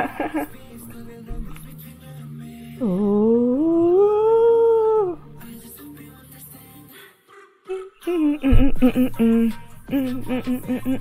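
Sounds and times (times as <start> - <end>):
dog-like howl: 3.2 - 5.2.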